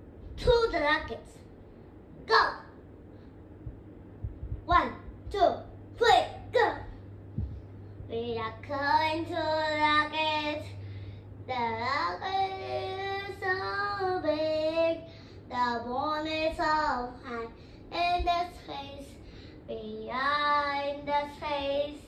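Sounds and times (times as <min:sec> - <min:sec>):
girl singing unaccompanied: 0:08.0 - 0:10.8, 0:11.4 - 0:22.0.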